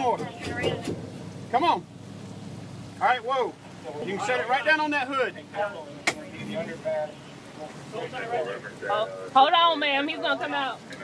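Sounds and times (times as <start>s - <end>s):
faint voices: 0.0s - 2.0s, 2.9s - 11.0s.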